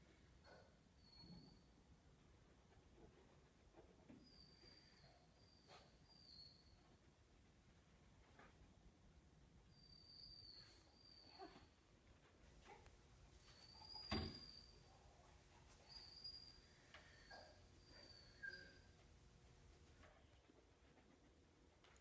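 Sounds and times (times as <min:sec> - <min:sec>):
faint high squeaks: 0:00.4 - 0:01.8, 0:03.0 - 0:07.1, 0:09.7 - 0:19.0.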